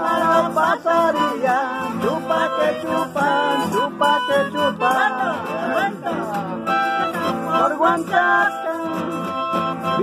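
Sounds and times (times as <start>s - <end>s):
button accordion chords: 0.0s - 10.0s
strummed nylon-string guitar: 0.0s - 10.0s.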